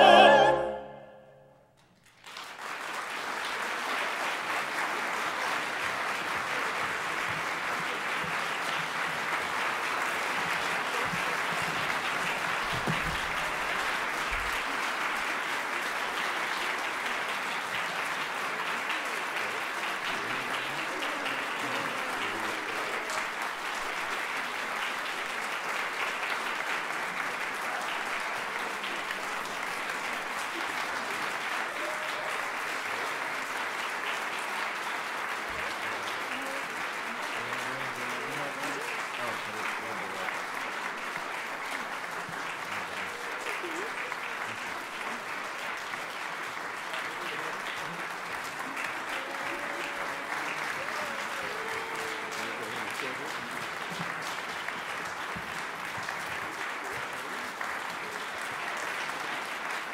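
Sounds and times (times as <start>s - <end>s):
voices in crowd: 0.0s - 1.4s, 3.6s - 59.9s
audience applauding: 1.8s - 59.9s.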